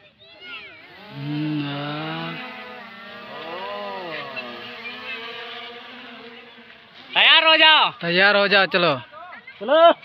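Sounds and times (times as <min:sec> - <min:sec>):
drone propellers buzzing: 0:00.8 - 0:08.0.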